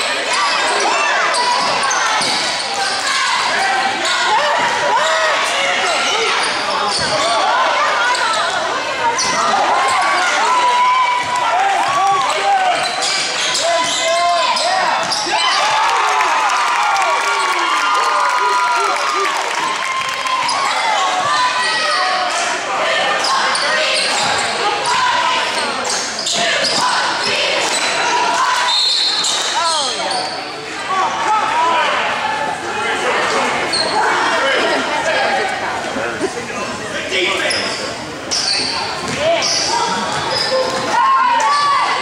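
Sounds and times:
sneakers squeaking: 0.4 - 3.0, 6.0 - 10.0, 11.1 - 15.8, 23.2 - 30.5, 33.6 - 34.3, 37.3 - 42.0.

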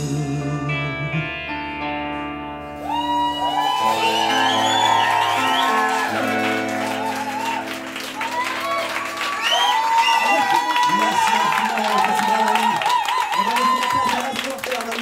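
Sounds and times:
audience cheering and shouting: 2.8 - 15.0
audience clapping: 2.8 - 15.0
rock band final chord on guitars: 4.1 - 9.2.

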